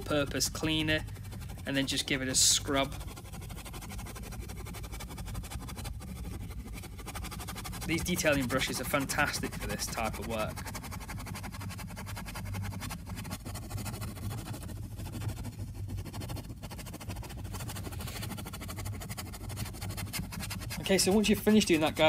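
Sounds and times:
brush scrubbing rubber mat: 0.0s - 22.0s
steady low hum: 0.0s - 22.0s.

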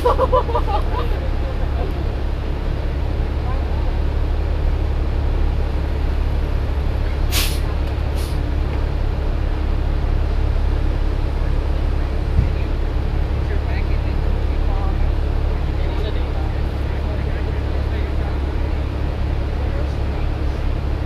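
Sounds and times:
bus engine idling: 0.0s - 21.0s
compressed air hisses: 7.3s - 8.4s.

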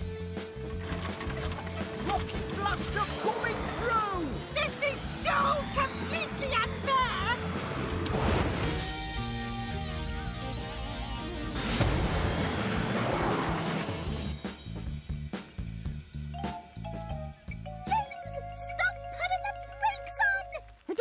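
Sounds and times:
lively cartoon music: 0.0s - 21.0s.

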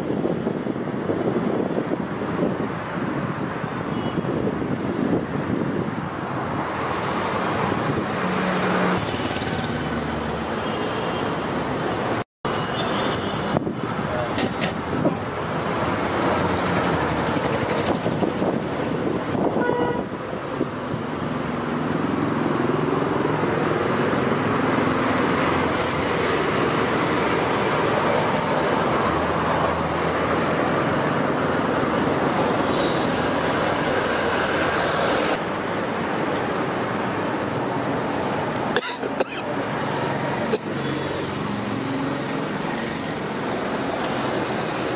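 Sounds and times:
passing vehicles: 0.0s - 44.9s.

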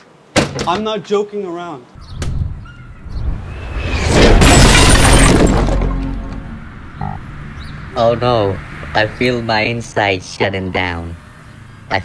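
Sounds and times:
loud crashing noise: 3.7s - 6.2s.

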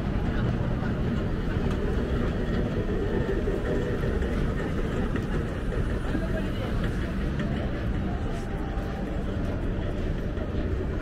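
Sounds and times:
indistinct voices of passers-by: 0.0s - 11.0s
traffic rumble: 0.0s - 11.0s.

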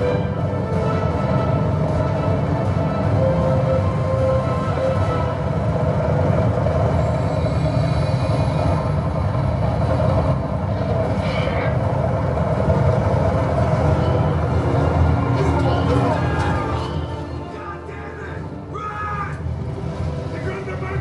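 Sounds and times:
action film low rumble: 0.0s - 21.0s.

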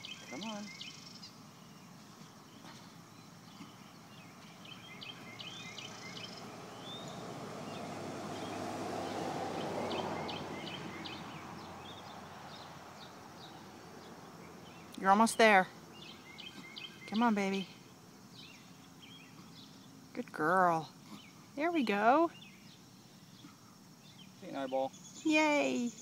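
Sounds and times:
small birds chirping: 0.0s - 26.0s.

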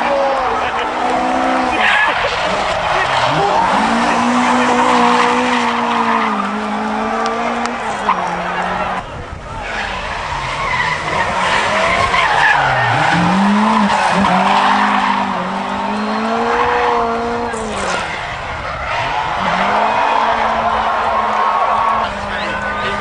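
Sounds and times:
car engine revving: 0.0s - 23.0s.

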